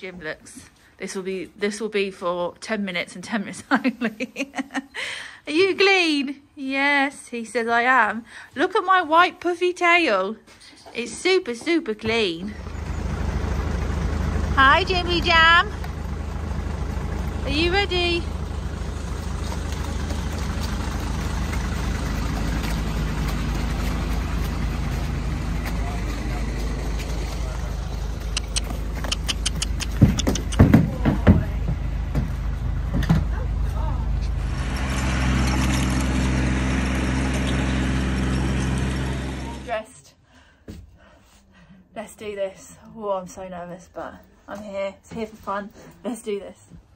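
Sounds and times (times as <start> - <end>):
vehicle engine idling: 12.4 - 39.7
hooves thudding on wooden ramp: 18.2 - 35.0.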